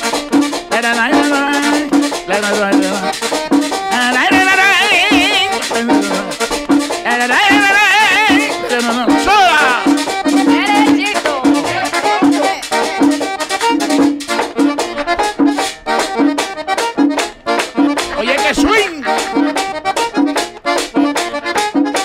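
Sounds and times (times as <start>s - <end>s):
accordion: 0.0s - 22.0s
fast percussion beat: 0.0s - 22.0s.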